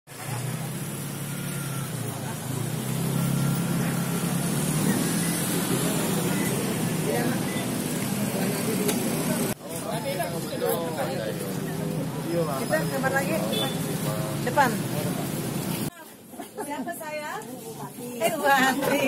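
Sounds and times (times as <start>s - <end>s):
people talking: 0.2s - 19.0s.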